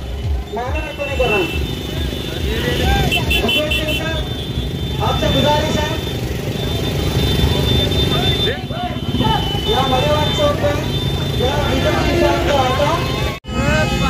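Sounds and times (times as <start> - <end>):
crowd shouting and cheering: 0.0 - 4.2, 6.7 - 14.0
motorcycle engines running: 0.0 - 14.0.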